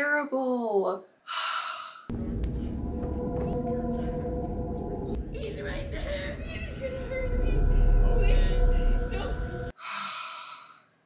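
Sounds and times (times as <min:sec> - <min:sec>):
deep low rumble with held tones: 0:02.1 - 0:09.7.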